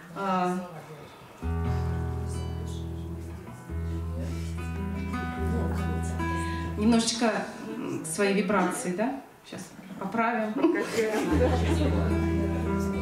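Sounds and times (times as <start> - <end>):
classical guitar chords strummed: 1.4 - 6.9, 11.3 - 13.0.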